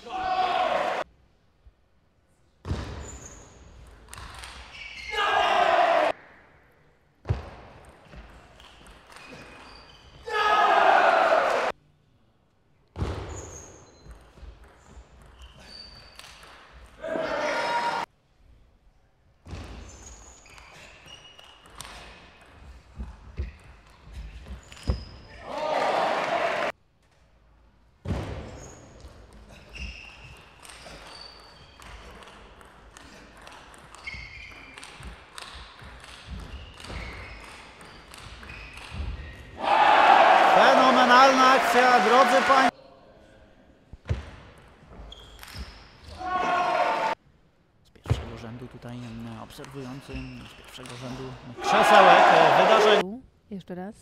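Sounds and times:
crowd shouting and cheering: 0.0s - 1.0s, 5.2s - 6.2s, 10.3s - 11.7s, 17.0s - 18.1s, 25.4s - 26.7s, 39.6s - 42.7s, 46.2s - 47.2s, 51.6s - 53.0s.

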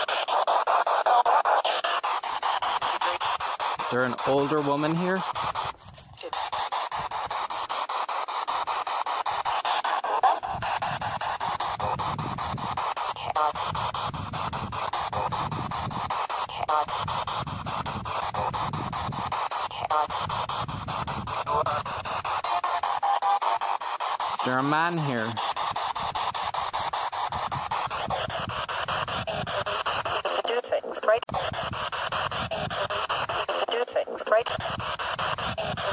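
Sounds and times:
radio static hiss: 0.0s - 35.9s
snatches of radio music: 0.0s - 35.9s
snatches of radio voices: 0.0s - 35.9s.

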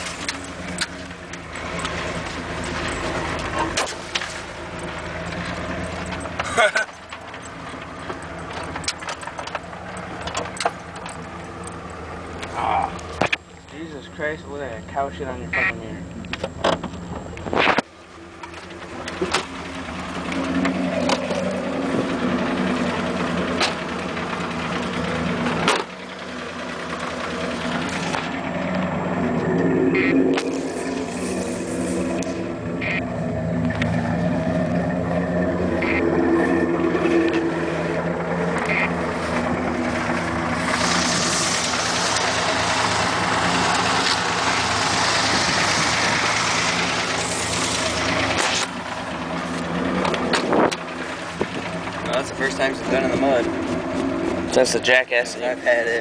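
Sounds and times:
truck engine revving: 0.0s - 56.0s
mud and water spraying: 26.8s - 56.0s.

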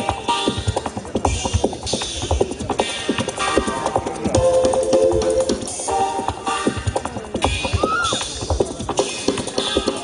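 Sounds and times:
jazz drum kit playing: 0.0s - 10.0s.

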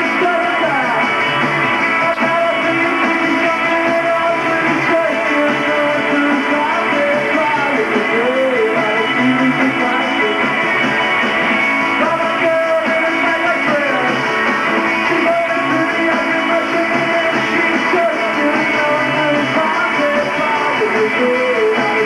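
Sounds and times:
man singing: 0.0s - 1.2s, 2.0s - 10.6s, 11.9s - 14.3s, 15.0s - 22.0s
distorted electric guitar: 0.0s - 22.0s
drums: 0.0s - 22.0s.

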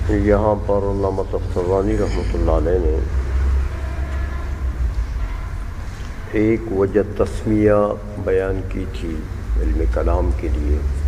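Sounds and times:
low rumble: 0.0s - 10.5s.

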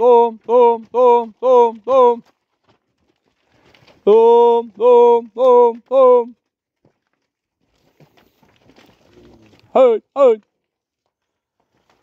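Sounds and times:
man singing cattle calls: 0.0s - 2.2s, 4.0s - 6.4s.

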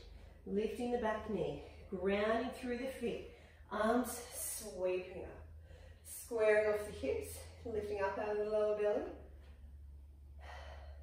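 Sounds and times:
woman breathing: 0.0s - 0.5s, 3.2s - 4.8s, 5.4s - 6.3s, 9.2s - 11.0s
low steady hum: 0.0s - 11.0s.

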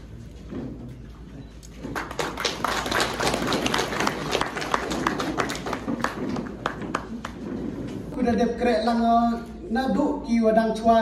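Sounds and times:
audience applauding: 1.9s - 7.4s.

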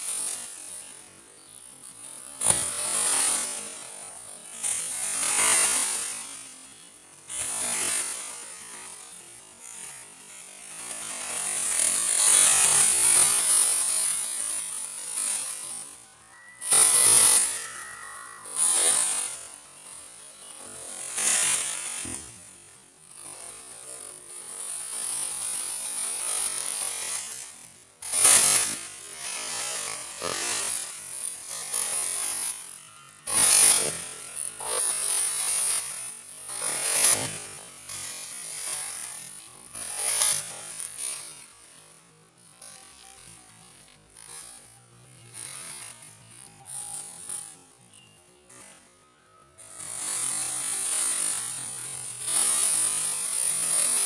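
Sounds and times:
short thin steady tone: 15.0s - 21.9s.

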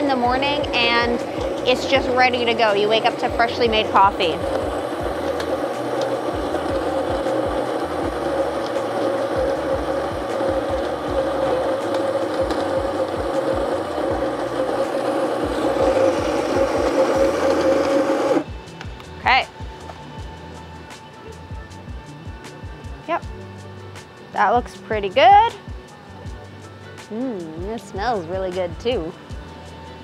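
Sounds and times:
coffee grinder motor whirring: 0.0s - 18.6s.

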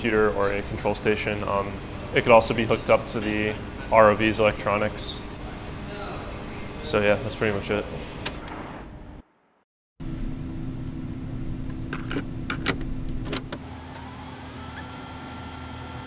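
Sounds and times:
monitor electrical hum: 0.0s - 9.2s, 10.0s - 16.0s.

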